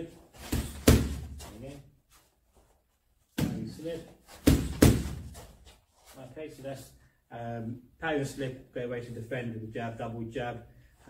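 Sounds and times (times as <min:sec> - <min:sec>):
boxing glove smacking padded stick: 0:00.4 - 0:01.6, 0:03.3 - 0:05.8.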